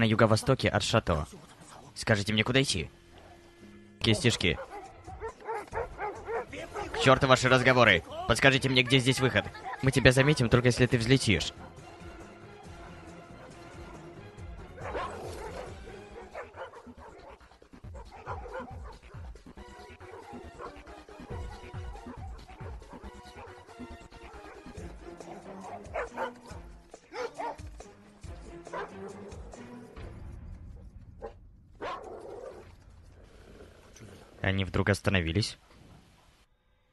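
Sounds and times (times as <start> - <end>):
background music: 0.0 - 36.9
dogs yipping: 4.4 - 7.2, 14.7 - 27.8, 28.7 - 29.5, 31.2 - 32.7.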